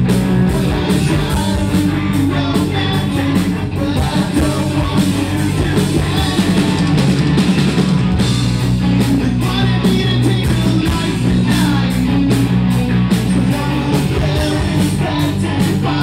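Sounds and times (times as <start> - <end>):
bass guitar: 0.0 - 16.0
drum kit: 0.0 - 16.0
electric guitars: 0.0 - 16.0.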